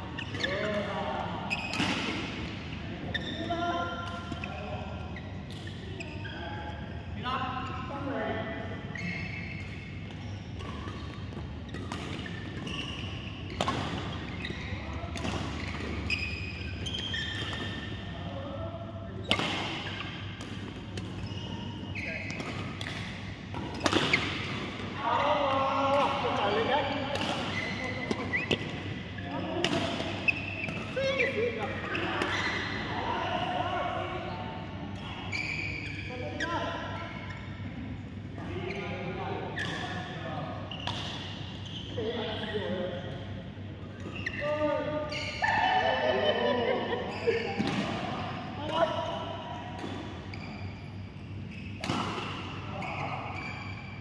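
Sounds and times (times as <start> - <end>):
badminton rackets hitting shuttlecock: 19.2 - 21.2, 22.3 - 24.8, 27.1 - 28.8.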